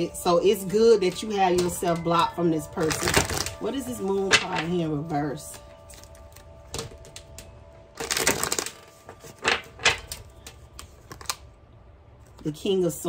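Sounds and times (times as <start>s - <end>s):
cards being shuffled: 5.5s - 11.5s.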